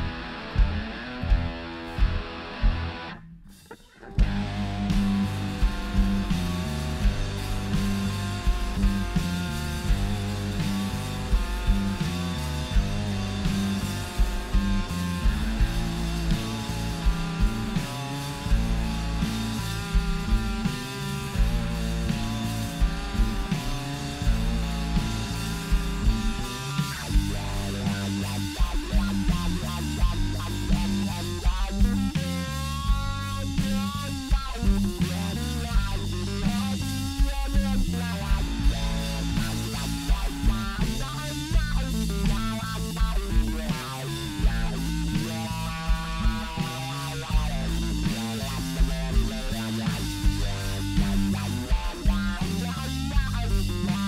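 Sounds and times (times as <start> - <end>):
bass guitar: 0.0 - 54.0
distorted electric guitar: 0.0 - 54.0
drum kit: 0.0 - 54.0.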